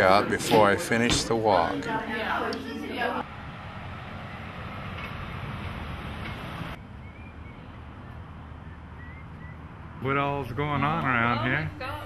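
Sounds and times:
street rumble and hiss: 0:02.8 - 0:12.0.

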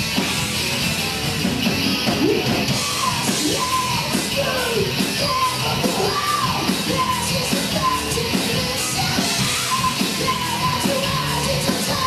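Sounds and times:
drum kit: 0:00.0 - 0:12.0
electric guitar: 0:00.0 - 0:12.0
person shouting vocals: 0:03.1 - 0:07.2.

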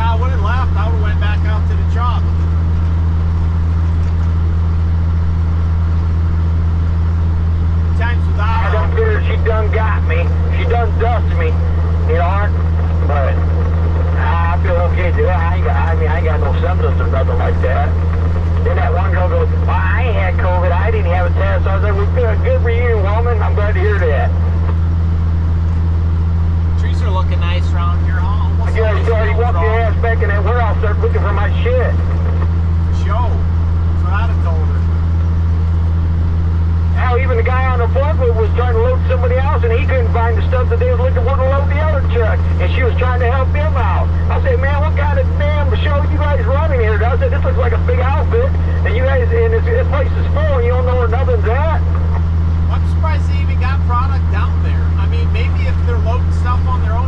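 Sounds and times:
people talking: 0:00.0 - 0:02.4, 0:07.9 - 0:24.4, 0:26.7 - 0:32.3, 0:32.9 - 0:35.0, 0:36.9 - 0:57.0
truck diesel engine droning: 0:00.0 - 0:57.0.

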